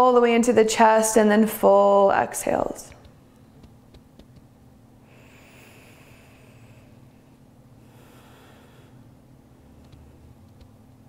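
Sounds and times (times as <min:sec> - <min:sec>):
low room hum: 0:00.0 - 0:11.0
person breathing faintly: 0:05.0 - 0:09.2.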